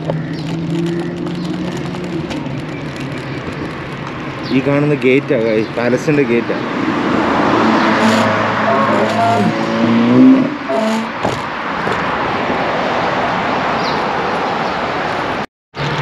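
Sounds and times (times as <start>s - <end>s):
wind and road noise: 0.0s - 16.0s
car driving past: 6.6s - 14.8s.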